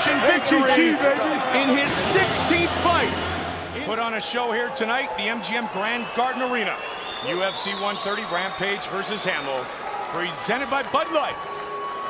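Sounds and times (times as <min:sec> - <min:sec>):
man's voice: 0:00.0 - 0:04.8
music: 0:01.9 - 0:03.8.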